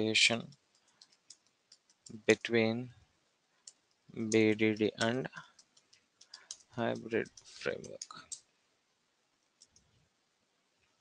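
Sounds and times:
faint keyboard clicks: 0.4 - 2.5, 3.6 - 8.5, 9.4 - 10.0.

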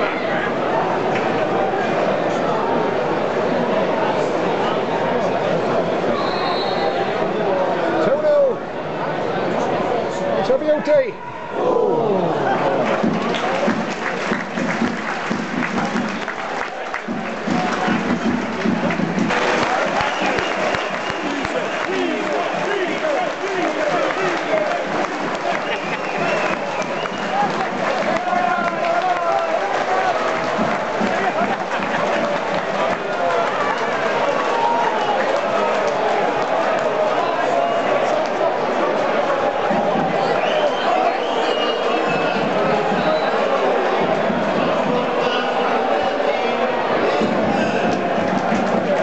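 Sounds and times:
crowd cheering: 0.0 - 49.0
crowd shouting and chanting: 0.0 - 49.0
crowd clapping: 12.4 - 49.0.

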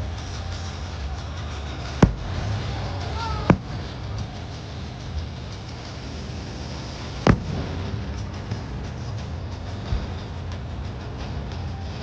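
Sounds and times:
steady background noise: 0.0 - 12.0
firework shell bursting bang: 7.3 - 7.9.

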